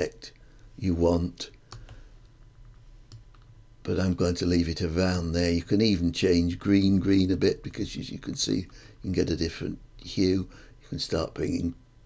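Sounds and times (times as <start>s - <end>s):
computer mouse clicks: 1.7s - 3.5s.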